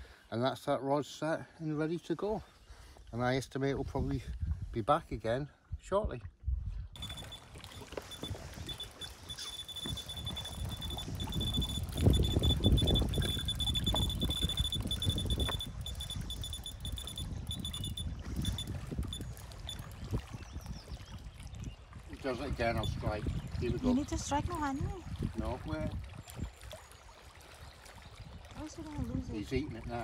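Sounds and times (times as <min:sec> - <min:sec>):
wind rumble on microphone: 0:03.4 - 0:26.9, 0:27.6 - 0:30.0
bite alarm beeping: 0:07.0 - 0:20.0, 0:22.7 - 0:23.0.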